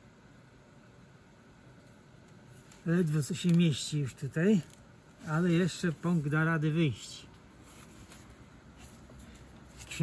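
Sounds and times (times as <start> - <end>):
low background hiss: 0.0 - 10.0
faint rustling and handling noise: 1.7 - 10.0.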